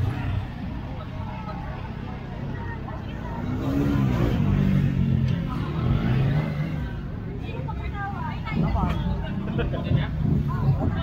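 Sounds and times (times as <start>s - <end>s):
crowd chatter: 0.0s - 11.0s
motorcycle engine revving: 3.4s - 7.0s.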